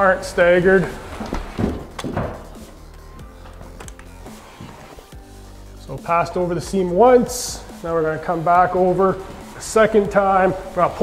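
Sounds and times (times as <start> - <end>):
background music: 0.0 - 11.0
drywall tool scraping ceiling: 0.6 - 2.7.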